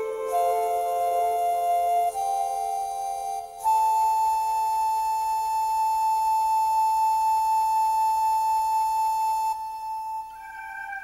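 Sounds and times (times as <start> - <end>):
electronic keyboard flute-like note: 0.0 - 11.0.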